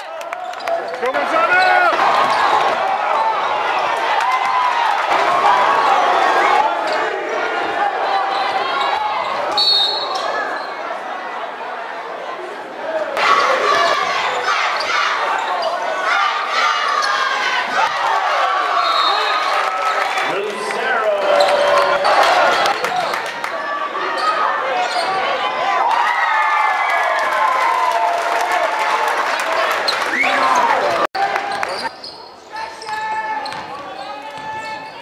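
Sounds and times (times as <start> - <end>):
crowd noise in a gym: 0.0 - 35.0
referee's whistle blast: 9.5 - 10.2.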